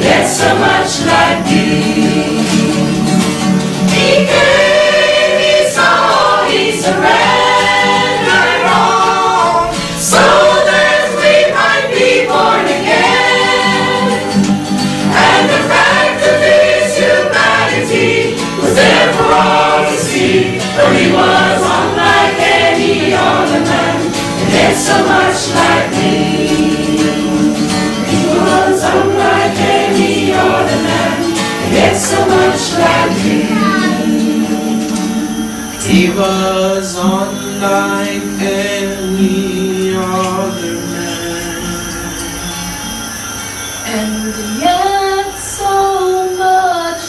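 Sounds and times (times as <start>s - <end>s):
mixed choir singing gospel: 0.0s - 47.0s.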